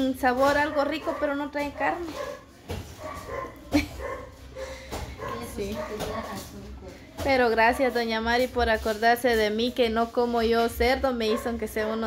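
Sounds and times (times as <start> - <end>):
dog barking: 0.4 - 6.4, 11.2 - 11.9.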